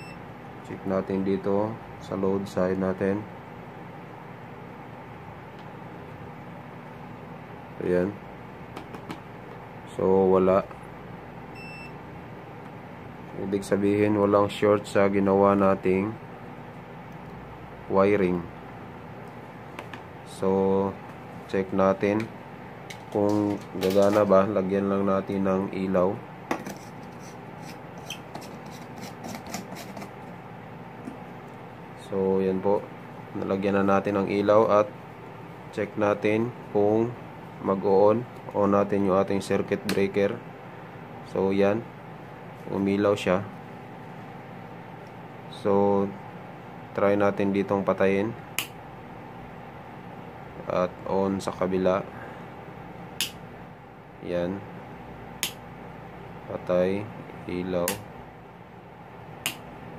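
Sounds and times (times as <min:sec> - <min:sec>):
sharp click: 0:48.6 - 0:48.8, 0:53.2 - 0:53.4, 0:55.4 - 0:55.6, 0:59.4 - 0:59.6.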